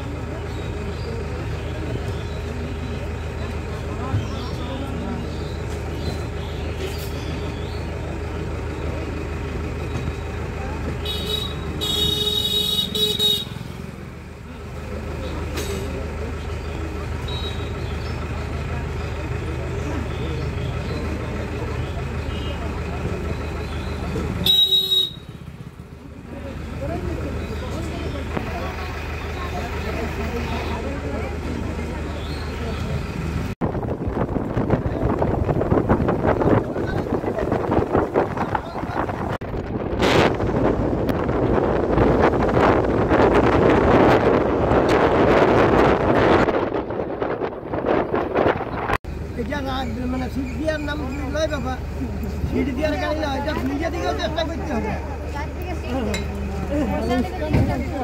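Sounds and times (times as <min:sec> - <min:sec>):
vehicle engine hum: 0:00.0 - 0:58.0
car horn tooting: 0:11.0 - 0:13.7, 0:24.4 - 0:25.5
wind buffeting microphone: 0:33.6 - 0:49.1.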